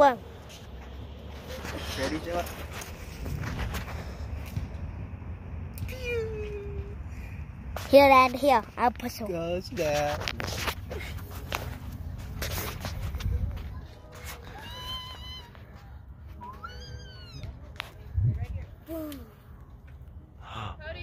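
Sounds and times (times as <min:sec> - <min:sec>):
baby squealing: 0:16.5 - 0:17.4
low rumble on microphone: 0:18.0 - 0:18.8.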